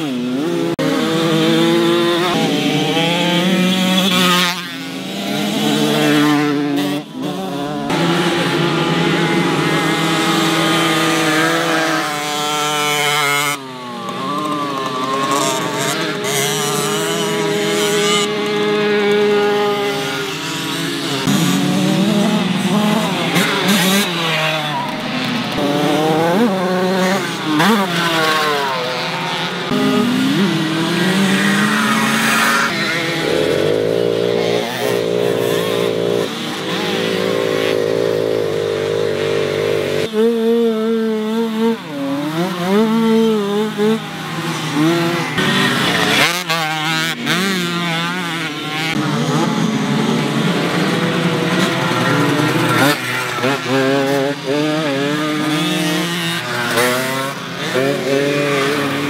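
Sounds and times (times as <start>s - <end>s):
moped engines revving: 0.0s - 59.0s.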